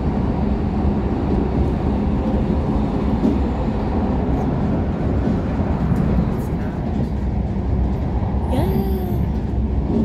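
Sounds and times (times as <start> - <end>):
train wheels rumbling: 0.0 - 10.0.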